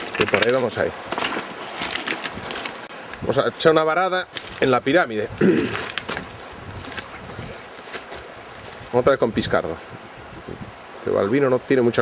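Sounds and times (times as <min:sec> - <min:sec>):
river running over gravel: 0:00.0 - 0:12.0.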